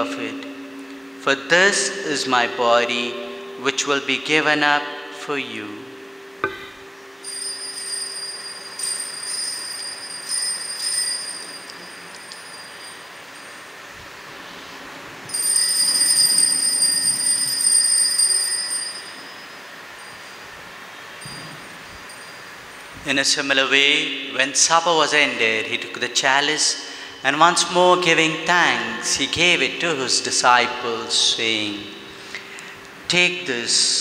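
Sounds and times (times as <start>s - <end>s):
altar bells ringing: 0.0s - 14.0s, 15.3s - 23.0s.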